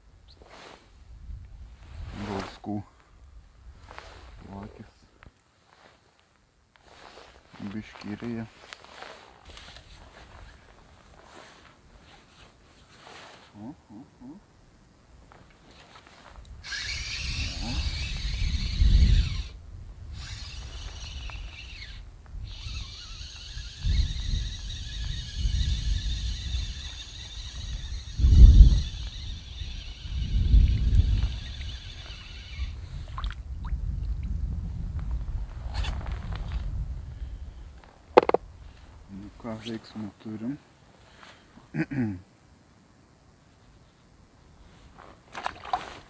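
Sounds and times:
wind buffeting microphone: 16.4s - 39.4s
fishing reel whirring: 16.6s - 33.2s, 38.2s - 38.4s.

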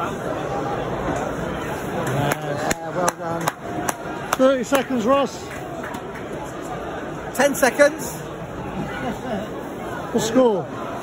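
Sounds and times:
sharp handclaps: 2.0s - 6.3s.

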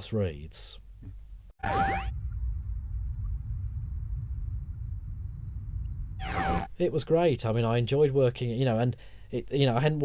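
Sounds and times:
low electronic rumbling drone: 1.6s - 6.7s
rising electronic swoosh: 6.2s - 6.7s.

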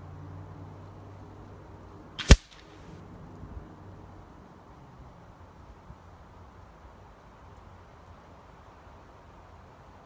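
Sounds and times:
air rifle shot crack: 2.2s - 2.8s.

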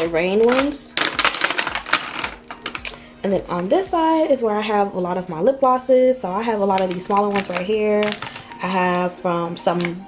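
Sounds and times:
plastic tubes clicking and clattering: 0.0s - 3.0s, 6.7s - 9.0s.

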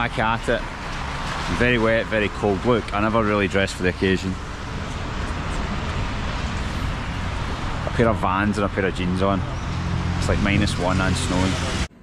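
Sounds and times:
traffic hiss on wet road: 0.0s - 9.0s
wind rumbling on microphone: 3.6s - 11.9s
man's voice: 7.9s - 9.4s, 10.2s - 11.9s.

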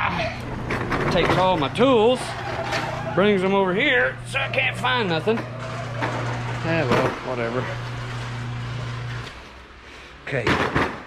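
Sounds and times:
steady low hum: 0.0s - 10.3s.

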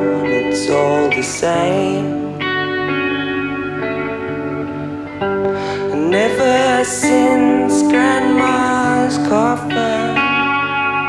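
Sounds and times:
guitar with ringing notes: 0.0s - 11.0s.

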